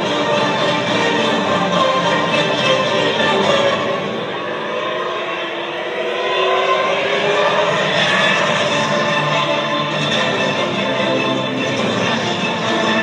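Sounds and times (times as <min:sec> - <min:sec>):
music over loudspeakers: 0:00.0 - 0:04.5, 0:07.6 - 0:13.0.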